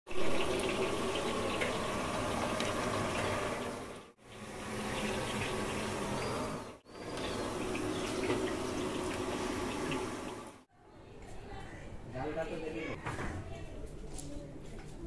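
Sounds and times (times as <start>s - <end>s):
running water rushing: 0.1s - 10.7s.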